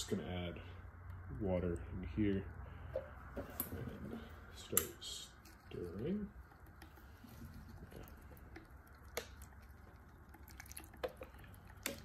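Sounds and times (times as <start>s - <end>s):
stirrer faint low hum: 0.0s - 12.0s.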